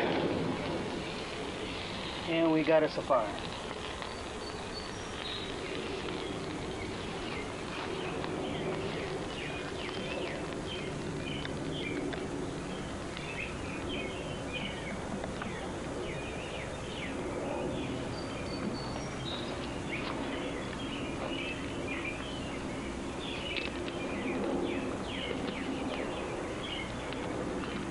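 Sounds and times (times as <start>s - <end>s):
birds chirping: 0.0s - 27.9s
burning grass crackling: 0.0s - 27.9s
outdoor background noise: 0.0s - 27.9s.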